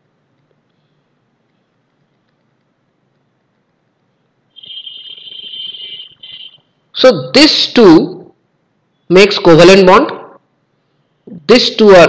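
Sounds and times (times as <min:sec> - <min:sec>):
high-pitched steady tone: 0:04.5 - 0:06.7.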